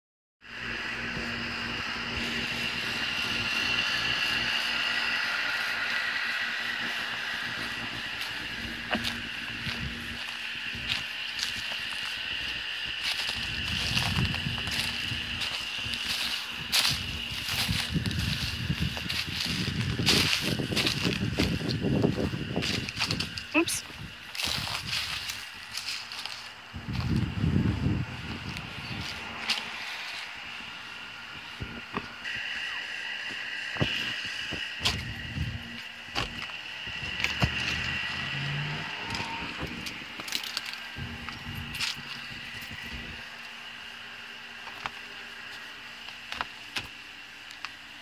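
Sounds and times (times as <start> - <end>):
high-pitched drone: 0.4 - 46.5.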